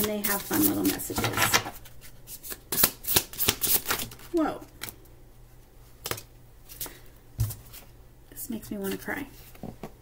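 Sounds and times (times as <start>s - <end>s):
cards being shuffled: 0.0s - 5.0s.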